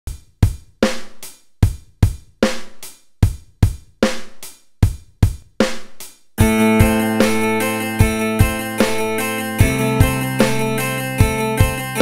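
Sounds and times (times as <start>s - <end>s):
kick and snare drum beat: 0.1s - 12.0s
cymbal ringing: 6.4s - 12.0s.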